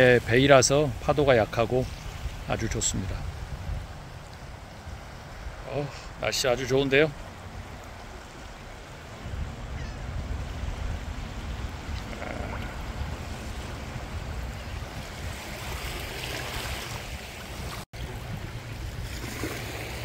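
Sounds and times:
wind buffeting microphone: 0:00.0 - 0:06.2, 0:07.1 - 0:20.0
small waves lapping: 0:00.0 - 0:20.0.

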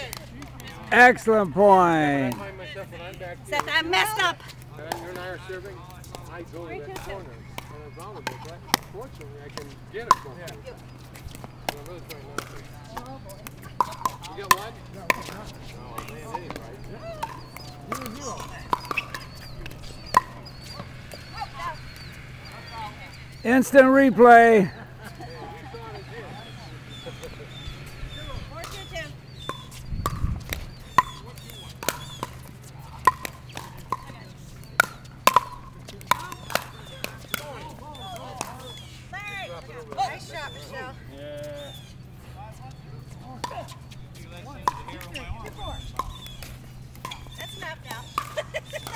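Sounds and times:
ball striking hard court: 0:13.4 - 0:22.8, 0:28.1 - 0:37.6, 0:44.6 - 0:47.5.

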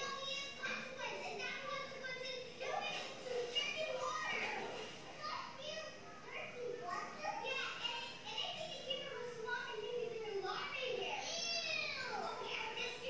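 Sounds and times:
girls talking on television: 0:00.0 - 0:13.0.

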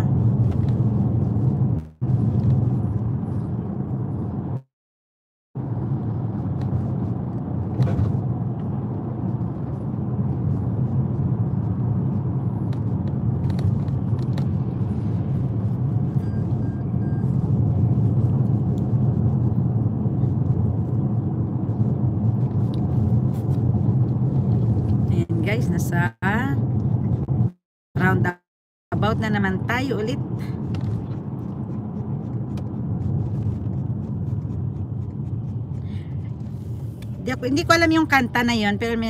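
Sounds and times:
car engine and tyres rumbling: 0:00.0 - 0:04.7, 0:05.6 - 0:39.0.

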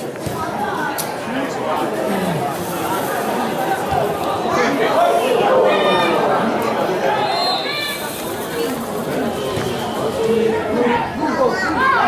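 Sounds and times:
spectators chattering and calling out: 0:00.0 - 0:12.0.

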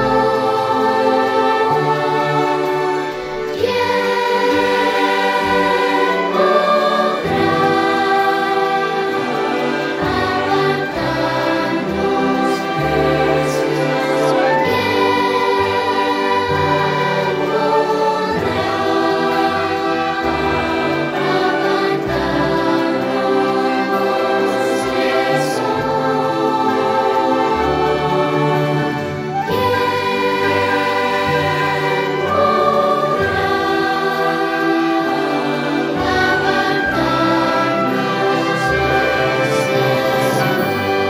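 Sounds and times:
choir singing a hymn: 0:00.0 - 0:41.0
string accompaniment: 0:00.0 - 0:41.0.

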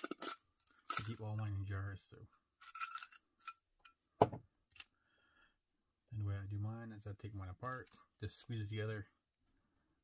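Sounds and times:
metal earrings clinking in glass jar: 0:00.0 - 0:01.3, 0:02.6 - 0:04.0.

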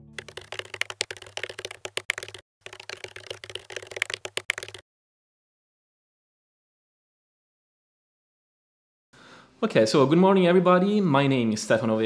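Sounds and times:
keyboard key clicks: 0:00.2 - 0:04.8.

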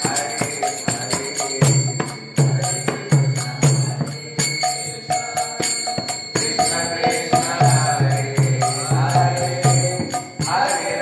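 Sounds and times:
hand cymbals jingling: 0:00.0 - 0:11.0
man chanting: 0:00.0 - 0:11.0.

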